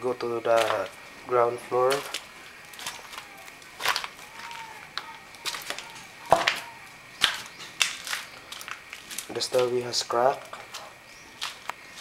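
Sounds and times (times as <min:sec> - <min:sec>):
footsteps on rubble-strewn stairs: 0:00.4 - 0:12.0.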